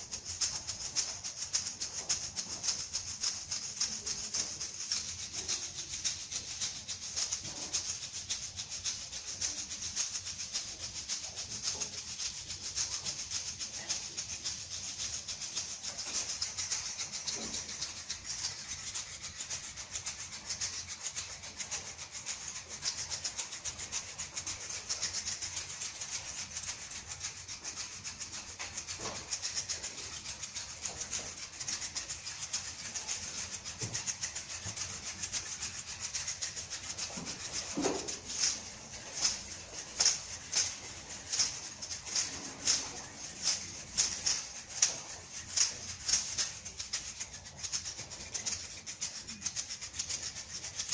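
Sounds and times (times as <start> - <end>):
egg shakers rattling: 0.0 - 50.9.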